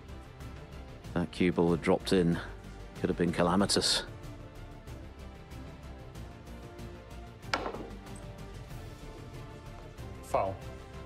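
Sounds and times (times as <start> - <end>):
soft background music: 0.0 - 11.0
snooker cue striking ball: 7.5 - 8.1.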